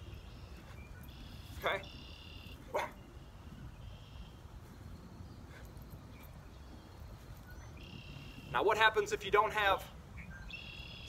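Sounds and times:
dog barking: 2.7 - 3.0.

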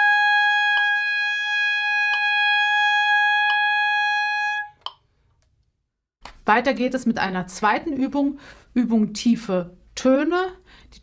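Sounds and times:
saxophone holding high note: 0.0 - 4.8.

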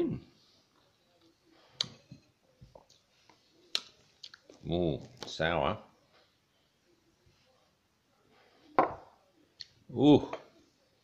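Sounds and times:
glass set down on table: 8.8 - 9.2.

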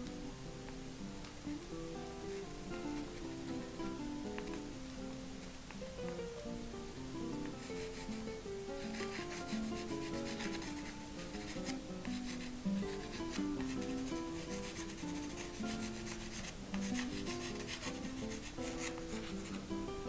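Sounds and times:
soft acoustic guitar music: 0.0 - 20.0
pastel stick scratching on surface: 7.6 - 19.7.

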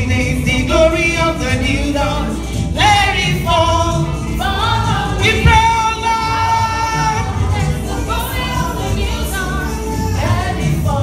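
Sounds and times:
live gospel choir singing: 0.0 - 11.0.

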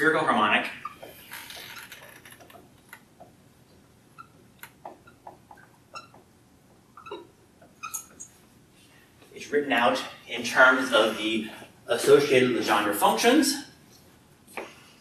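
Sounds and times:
marker squeaking on whiteboard: 0.8 - 3.0, 4.0 - 8.4.

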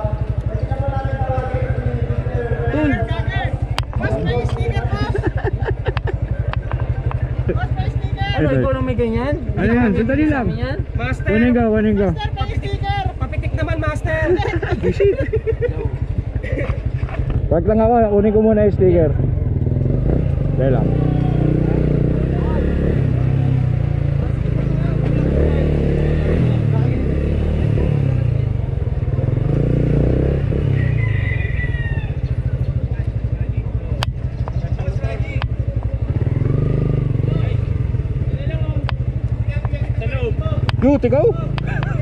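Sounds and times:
motorcycle engine idling: 0.0 - 25.3, 26.3 - 42.0.

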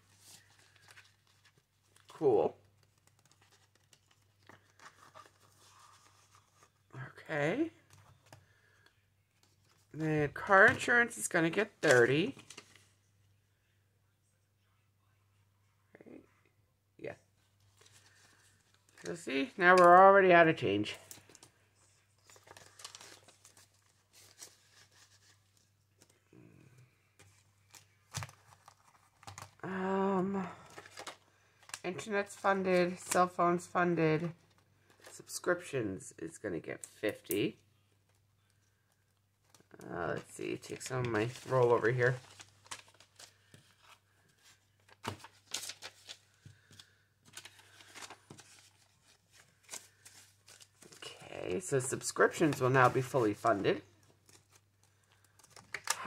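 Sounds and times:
plastic and paper crinkling: 0.0 - 6.9, 7.8 - 12.9, 17.6 - 26.2, 27.2 - 29.6, 30.5 - 33.8, 38.0 - 56.0.

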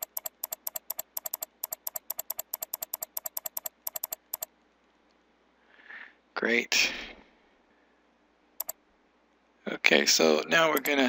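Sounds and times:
mouse button clicking rapidly: 0.0 - 4.5, 10.7 - 11.0.

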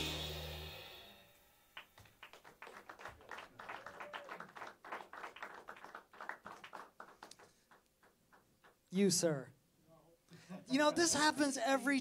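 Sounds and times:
drum kit ringing: 0.0 - 1.8
scattered audience clapping: 1.8 - 8.9.

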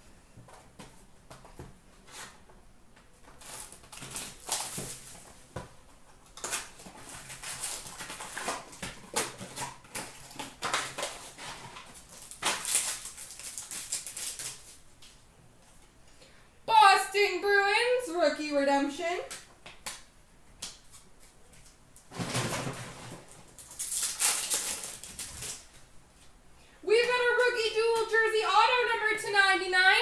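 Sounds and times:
foil wrappers crinkling: 3.3 - 5.4, 6.2 - 15.2, 22.6 - 25.8.

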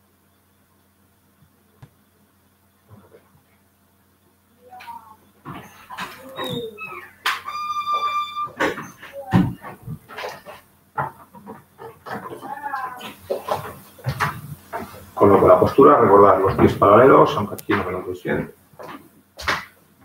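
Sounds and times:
dog whining: 5.0 - 9.7.

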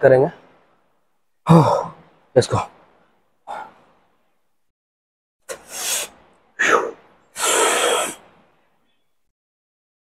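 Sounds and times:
man's sharp breath: 5.5 - 8.3.

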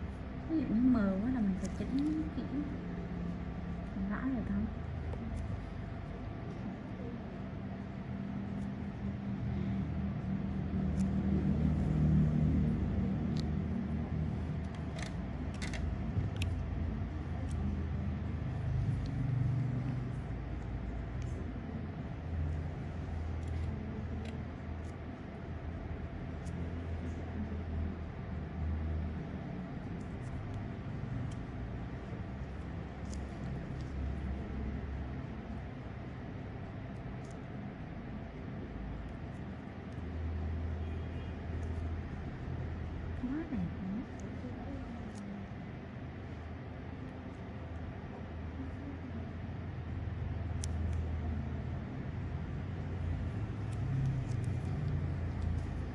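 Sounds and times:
low background rumble: 0.0 - 55.9.

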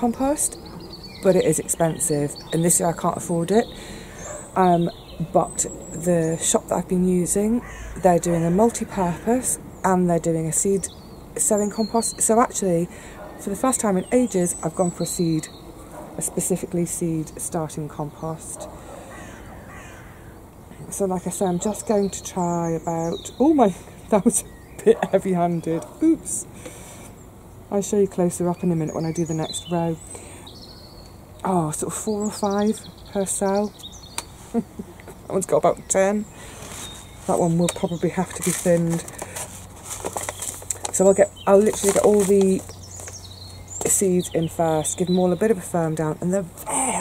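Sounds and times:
paper packet rustling: 36.5 - 43.2.

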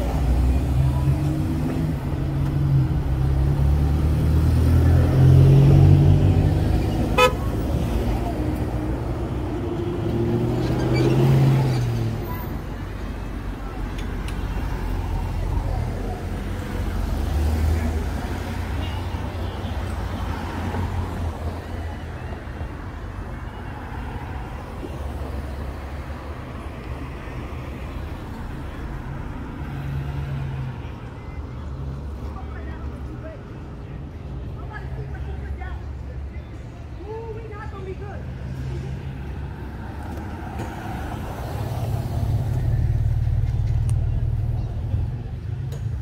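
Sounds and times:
cars passing: 0.0 - 46.0.

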